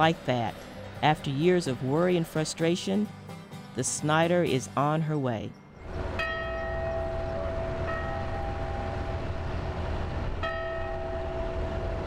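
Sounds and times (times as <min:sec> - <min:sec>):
ship bell ringing: 0:05.5 - 0:12.0.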